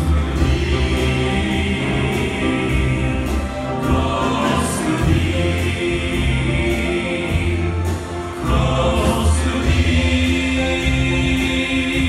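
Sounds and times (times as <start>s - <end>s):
keyboards: 0.0s - 12.0s
sustained bass notes: 0.0s - 12.0s
male group singing a hymn: 0.4s - 12.0s.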